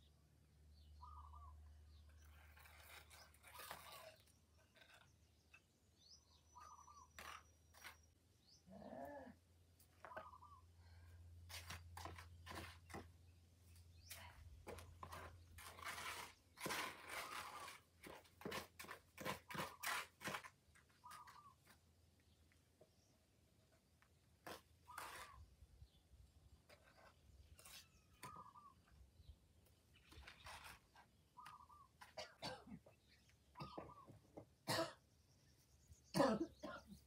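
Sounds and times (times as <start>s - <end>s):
crunching and scraping dirt: 1.0s - 8.8s, 9.8s - 34.5s.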